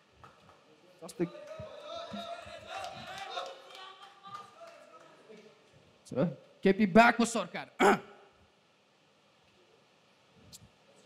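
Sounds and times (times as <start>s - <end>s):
faint voices in a hall: 0.0s - 6.6s.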